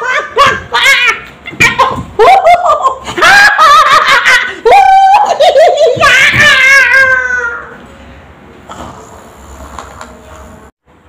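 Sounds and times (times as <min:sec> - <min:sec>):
child laughing and squealing: 0:00.0 - 0:07.8.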